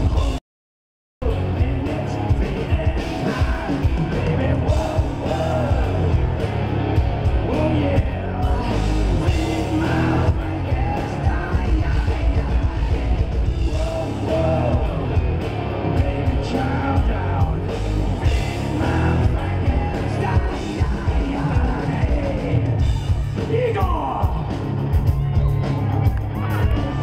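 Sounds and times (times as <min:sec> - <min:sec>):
hard rock band playing: 0:00.0 - 0:00.4, 0:01.2 - 0:27.0
man singing loudly: 0:01.2 - 0:06.3, 0:07.4 - 0:22.8.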